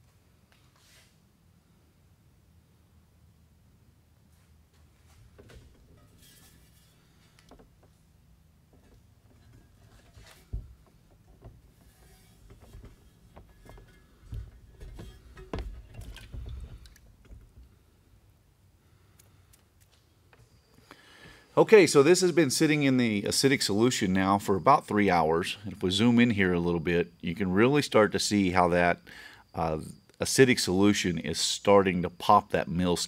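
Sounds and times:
metal plate knocking: 0:08.7 - 0:17.6
liquid sloshing: 0:08.7 - 0:17.8.

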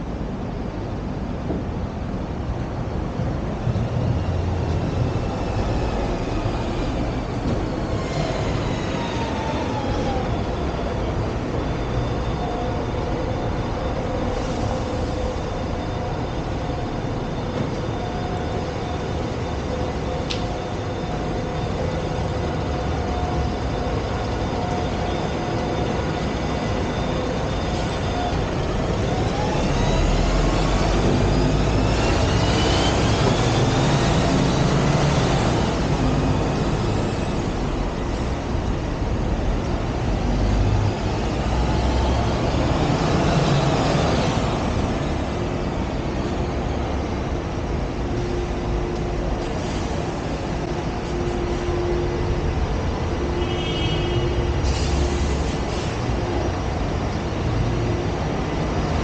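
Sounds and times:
bus pulling away with whine: 0:00.0 - 0:59.0
buses passing: 0:00.0 - 0:59.0.

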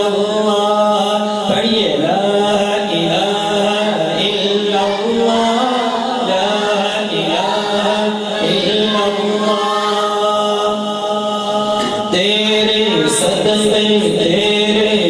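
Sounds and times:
man singing devotional song: 0:00.0 - 0:15.0.

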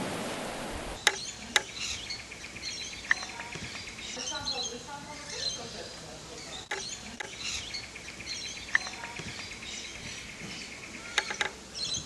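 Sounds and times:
sharp clicks: 0:01.0 - 0:01.8, 0:03.0 - 0:03.9, 0:06.6 - 0:07.8, 0:08.6 - 0:09.5, 0:11.0 - 0:11.6
fast even ticking call: 0:01.0 - 0:10.3, 0:10.9 - 0:12.0
high chirps: 0:01.0 - 0:12.0.

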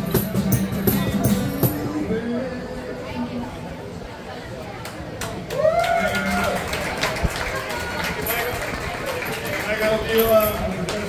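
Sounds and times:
acoustic guitar: 0:00.0 - 0:03.4
man singing: 0:01.6 - 0:03.5.

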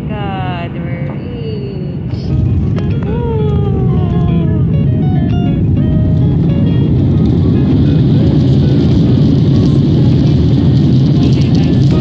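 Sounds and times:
jet airliner rumble in cabin: 0:00.0 - 0:12.0
background music: 0:02.0 - 0:12.0.

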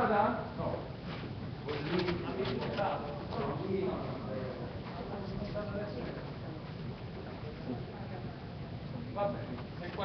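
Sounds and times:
muffled voices talking: 0:00.0 - 0:10.0.

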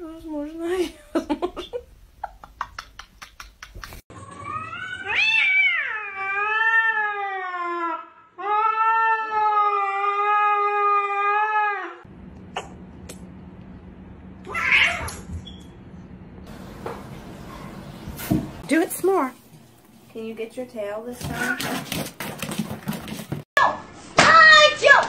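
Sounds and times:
cat yowling: 0:04.4 - 0:12.0, 0:14.5 - 0:15.2.

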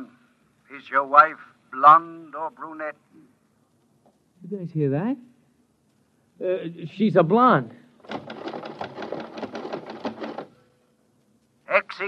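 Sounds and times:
rapid mechanical clatter: 0:08.0 - 0:10.6.

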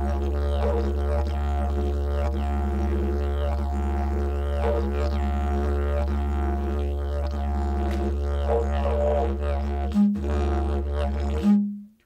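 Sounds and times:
didgeridoo drone: 0:00.0 - 0:11.6.

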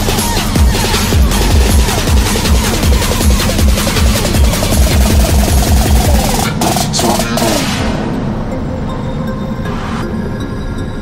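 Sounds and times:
kick-drum beat: 0:00.0 - 0:08.0
electronic music: 0:00.0 - 0:11.0.

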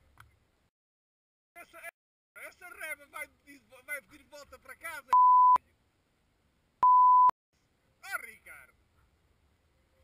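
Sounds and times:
censor beeps: 0:05.1 - 0:05.6, 0:06.8 - 0:07.3.

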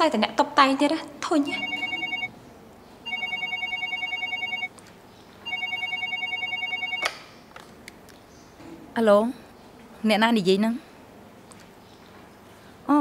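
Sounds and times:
telephone ringing: 0:01.5 - 0:02.3, 0:03.0 - 0:04.8, 0:05.4 - 0:07.2.

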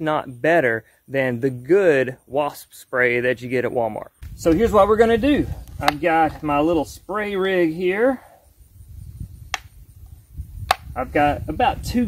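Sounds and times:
sharp plastic clicks: 0:10.6 - 0:10.9.

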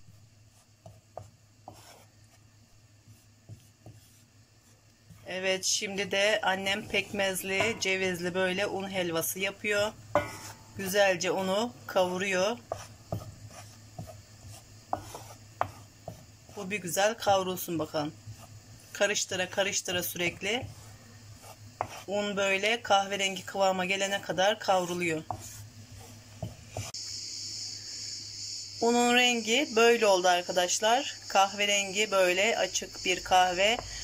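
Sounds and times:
wooden spoon scraping flour in pan: 0:00.0 - 0:08.5, 0:09.2 - 0:27.0
high-pitched hiss: 0:05.1 - 0:34.0.

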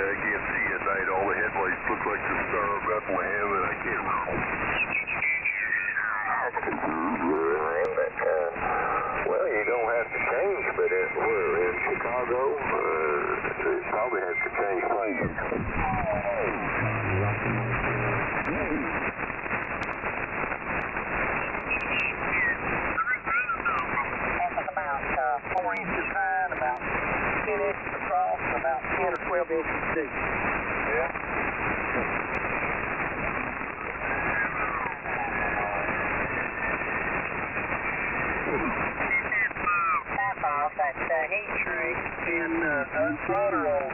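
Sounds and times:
distorted radio voices: 0:00.0 - 0:43.9
radio band hiss: 0:00.0 - 0:43.9
sliding radio whistles: 0:03.5 - 0:06.4, 0:21.3 - 0:23.2, 0:38.7 - 0:40.2.

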